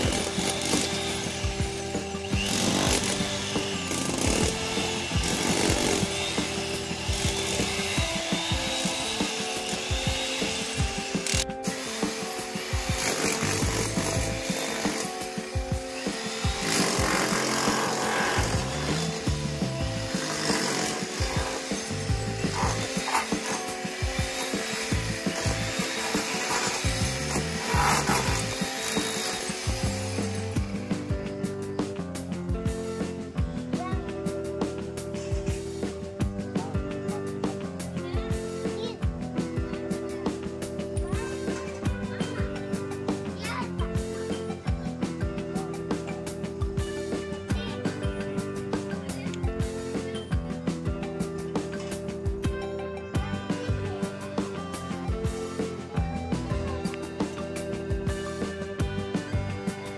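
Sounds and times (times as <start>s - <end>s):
electric chipping hammer rattling: 0.0s - 31.2s
background music: 0.0s - 59.9s.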